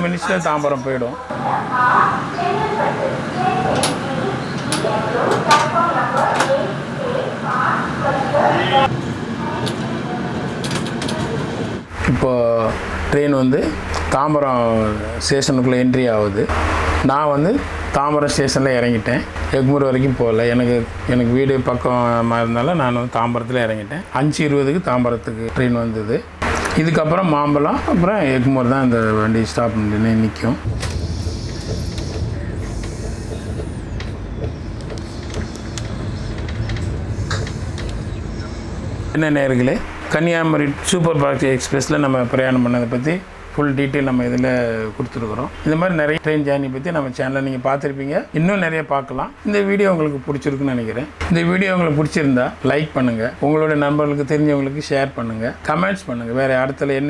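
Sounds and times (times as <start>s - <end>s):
train wheels rumbling on track: 30.6s - 39.2s.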